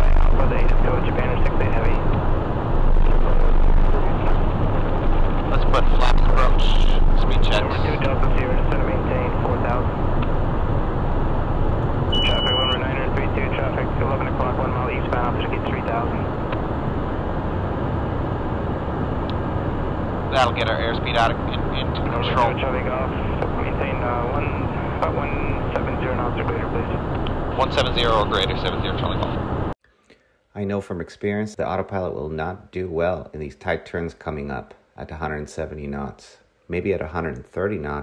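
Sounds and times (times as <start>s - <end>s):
deep low rumble: 0.0s - 29.8s
jet airflow and engines roar: 0.0s - 29.8s
short high beep: 12.1s - 12.8s.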